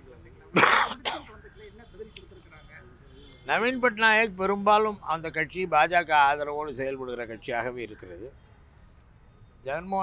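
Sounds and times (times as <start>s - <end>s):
man clearing throat: 0.6s - 1.3s.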